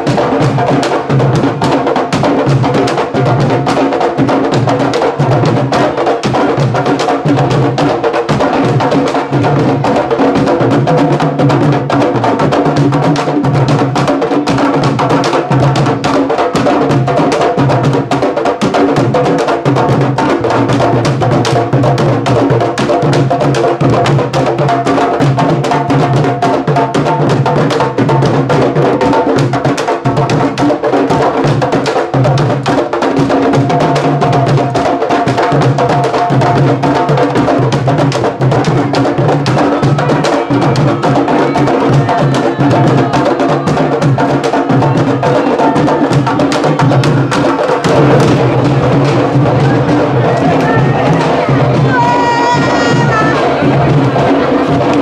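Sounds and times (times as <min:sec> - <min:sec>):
barrel drums playing rhythm: 0:00.0 - 0:55.0.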